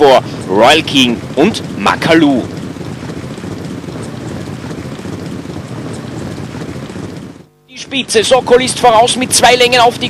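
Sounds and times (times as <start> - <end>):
rushing outdoor noise: 0.0 - 10.0.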